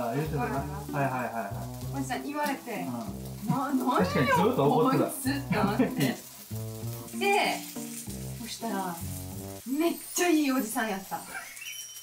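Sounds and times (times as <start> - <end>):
voices: 0.0 - 6.2
background music: 0.0 - 11.4
batter sizzling on hot plate: 0.0 - 12.0.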